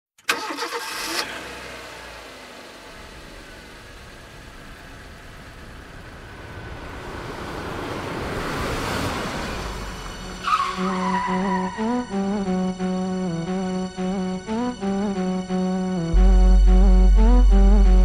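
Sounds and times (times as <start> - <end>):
car engine running: 0.8 - 18.0.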